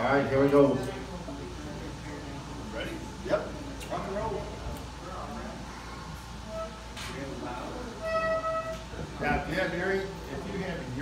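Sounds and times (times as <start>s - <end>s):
murmured voices: 0.0s - 11.0s
bagpipes sounding steady notes: 8.0s - 8.9s.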